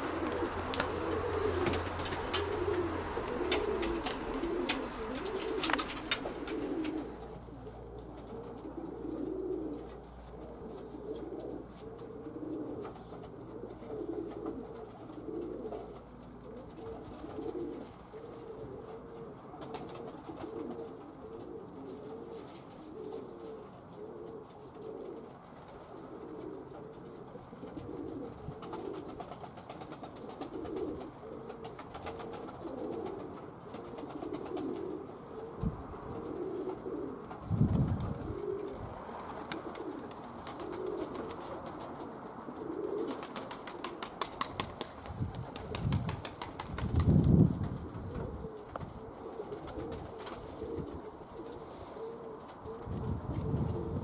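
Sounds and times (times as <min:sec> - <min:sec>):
pigeons cooing: 0:00.0 - 0:54.0.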